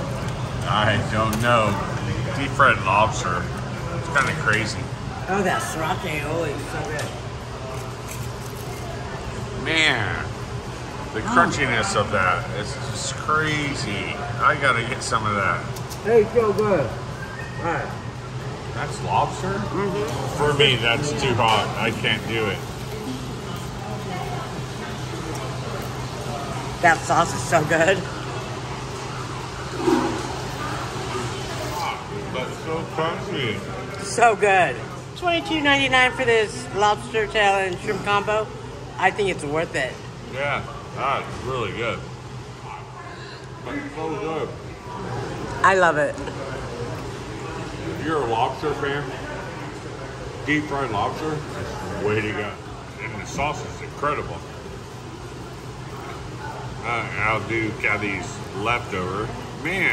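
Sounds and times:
faint voices: 0.0 - 59.9
restaurant hum: 0.0 - 59.9.

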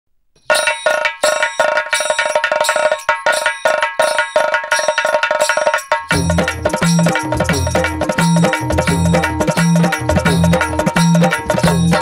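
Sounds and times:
bell-like metallic percussion: 0.4 - 12.0.

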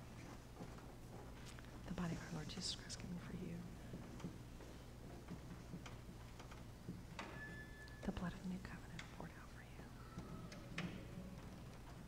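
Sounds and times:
steady low hum: 0.0 - 12.0
people whispering: 1.9 - 3.7, 8.0 - 10.4
small clicks and taps: 3.9 - 8.2.

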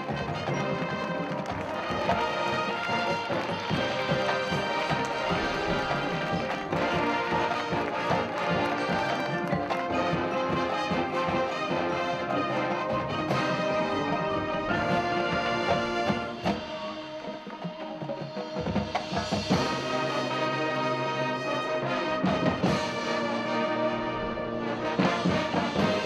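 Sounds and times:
marching band brass: 0.0 - 26.0
marching band percussion: 0.0 - 26.0.

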